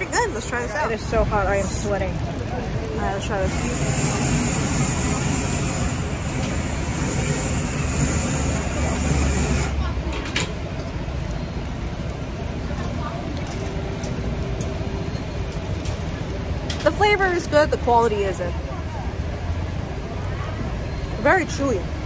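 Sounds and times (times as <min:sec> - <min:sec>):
low rumble of traffic: 0:00.0 - 0:22.0.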